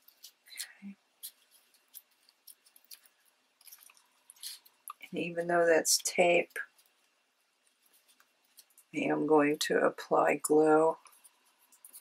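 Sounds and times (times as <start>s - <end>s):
fingers rustling paper: 0.0s - 9.0s, 10.9s - 12.0s.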